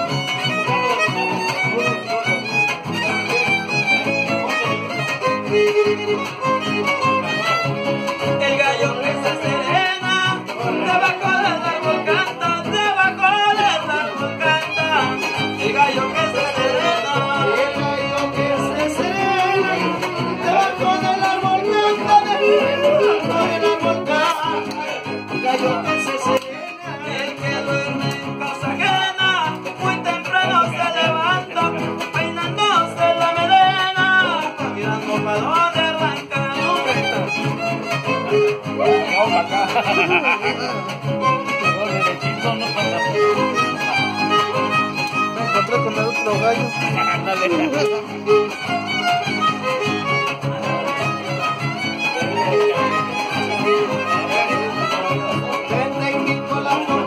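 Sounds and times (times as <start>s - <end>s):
strummed guitars: 0.0s - 57.0s
violin melody: 0.0s - 57.0s.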